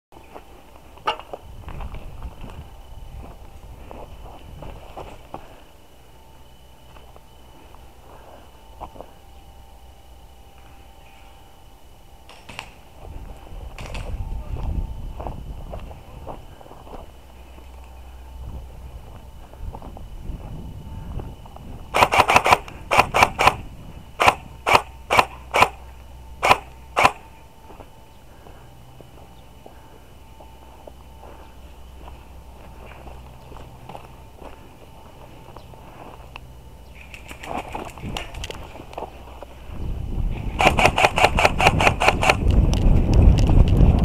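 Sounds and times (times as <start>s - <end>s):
airsoft rifle shots: 12.3s - 12.8s, 21.9s - 23.6s, 24.2s - 25.8s, 26.4s - 27.2s, 40.5s - 42.4s.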